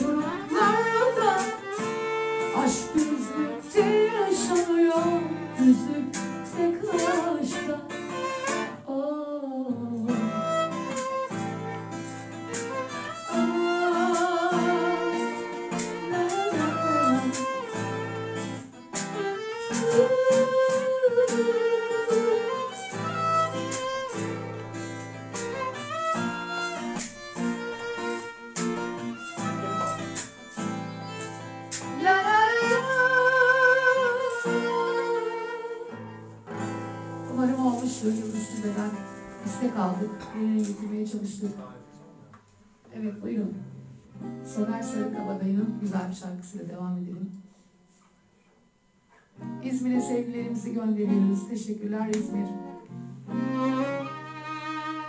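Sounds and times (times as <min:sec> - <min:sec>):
violin with vibrato: 0:00.0 - 0:08.8, 0:10.1 - 0:36.3, 0:53.3 - 0:55.0
woman singing: 0:00.0 - 0:10.8, 0:13.2 - 0:18.8, 0:19.6 - 0:23.2, 0:31.8 - 0:36.0, 0:37.2 - 0:41.5, 0:44.5 - 0:47.4, 0:49.5 - 0:52.8
acoustic guitar: 0:00.0 - 0:55.0.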